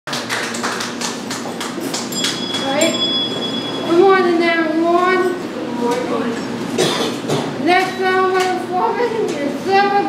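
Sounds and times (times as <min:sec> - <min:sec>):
handbells ringing: 0:02.0 - 0:05.5
high bell ringing out: 0:02.0 - 0:05.6.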